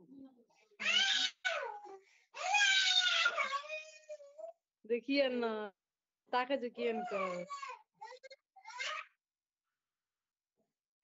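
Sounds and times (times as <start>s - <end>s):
baby crying: 0.8s - 4.5s, 6.8s - 9.1s.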